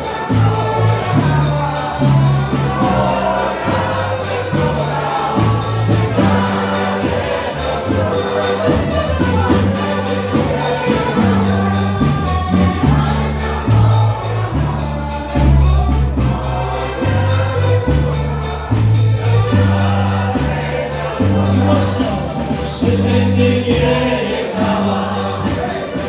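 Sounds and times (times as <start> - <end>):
folk dance band playing: 0.0 - 26.0.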